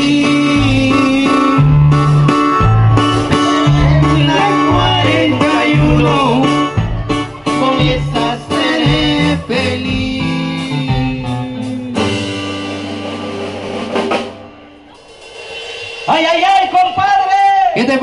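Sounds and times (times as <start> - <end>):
live band music with keyboard: 0.0 - 18.0.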